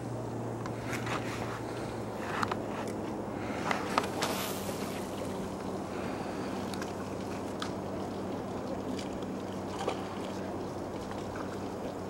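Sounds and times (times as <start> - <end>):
low motor hum: 0.0 - 12.0
outdoor noise: 0.0 - 12.0.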